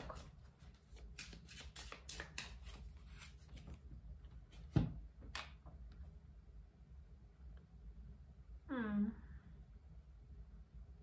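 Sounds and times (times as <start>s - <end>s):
cards being shuffled: 0.0s - 3.8s.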